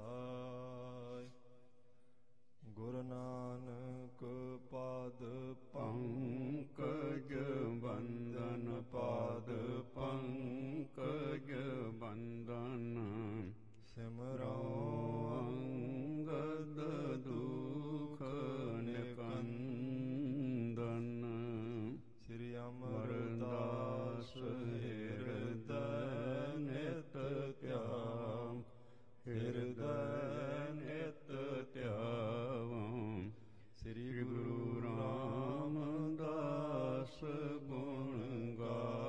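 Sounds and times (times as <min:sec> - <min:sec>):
man chanting: 0:02.6 - 0:39.0.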